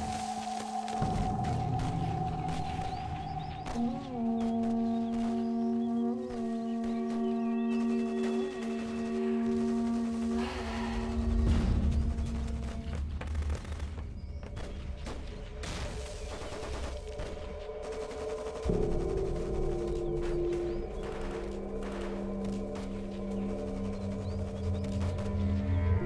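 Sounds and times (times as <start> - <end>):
film score low notes: 0.0 - 26.0.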